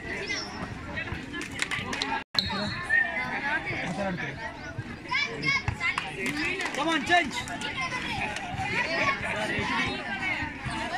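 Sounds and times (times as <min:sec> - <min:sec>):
background babble: 0:00.0 - 0:10.9
girls calling out and chattering: 0:00.0 - 0:10.9.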